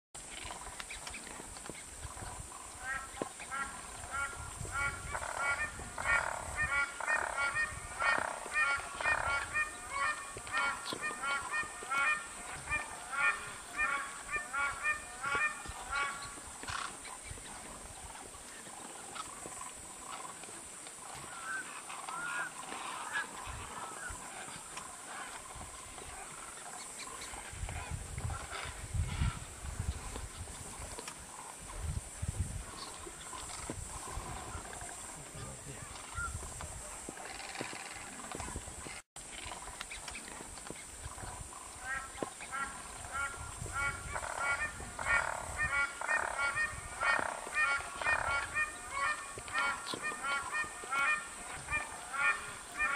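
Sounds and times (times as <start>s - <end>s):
waterbirds honking: 2.4s - 20.4s, 21.0s - 30.1s, 41.1s - 52.9s.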